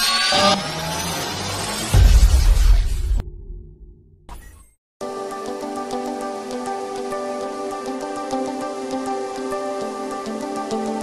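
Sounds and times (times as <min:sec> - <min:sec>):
deep bass hit: 0:01.9 - 0:04.2.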